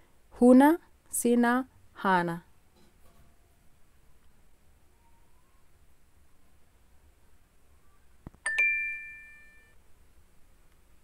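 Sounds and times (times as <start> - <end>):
two-note bell chime: 8.5 - 9.8.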